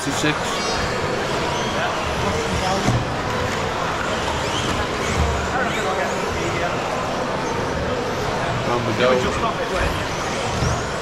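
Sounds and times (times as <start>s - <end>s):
rc car motors and tyres: 0.4s - 11.0s.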